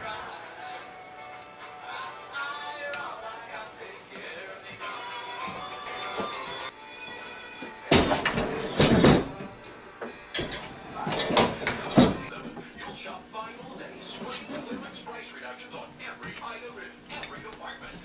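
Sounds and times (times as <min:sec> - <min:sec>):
background music: 0:00.0 - 0:12.5
metallic clanks and rattles: 0:07.9 - 0:09.5, 0:10.3 - 0:13.0.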